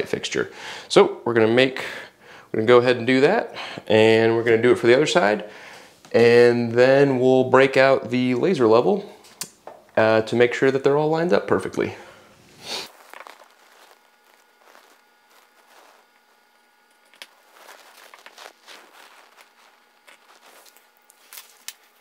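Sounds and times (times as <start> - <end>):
clothing rustle: 12.4 - 22.0.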